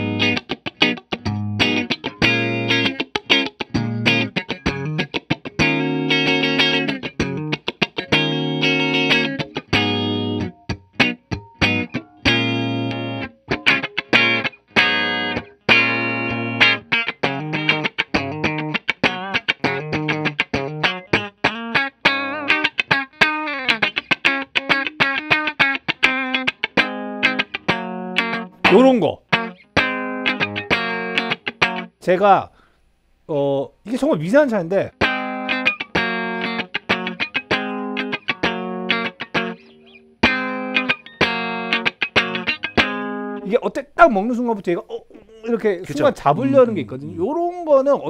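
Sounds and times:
electric guitar chords and lines: 0.0s - 32.0s, 34.9s - 43.6s.

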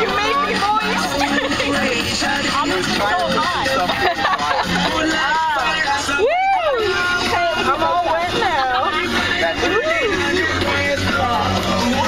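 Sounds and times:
people talking and shouting: 0.0s - 12.0s.

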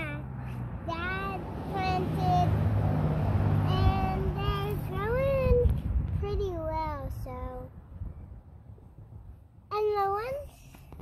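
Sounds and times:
girl singing wordless notes: 0.0s - 7.8s, 9.7s - 10.7s
steady low rumble: 0.0s - 11.0s.

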